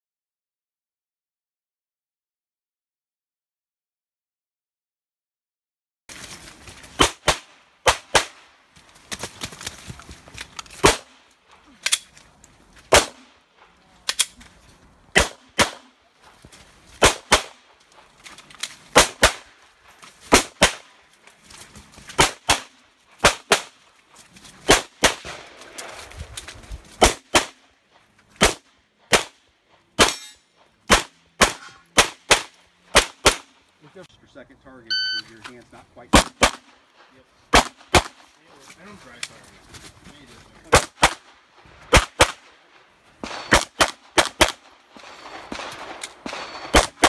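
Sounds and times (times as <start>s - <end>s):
pistol shots: 7.0s - 8.5s, 10.8s - 11.2s, 12.9s - 13.4s, 15.1s - 16.0s, 17.0s - 17.7s, 18.9s - 19.5s, 20.3s - 20.9s, 22.2s - 23.8s, 24.7s - 25.6s, 27.0s - 27.6s, 28.4s - 29.4s, 30.0s - 33.5s, 36.1s - 36.8s, 37.5s - 38.3s, 40.7s - 42.6s, 43.2s - 47.0s.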